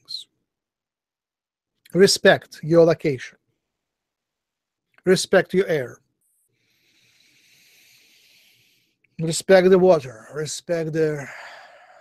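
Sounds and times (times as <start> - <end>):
slow breath near microphone: 6.5 - 9.1, 11.2 - 12.0.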